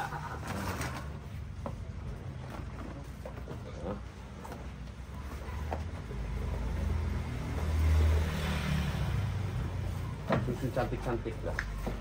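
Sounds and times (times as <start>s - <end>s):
vehicle engine passing by: 6.0s - 11.2s.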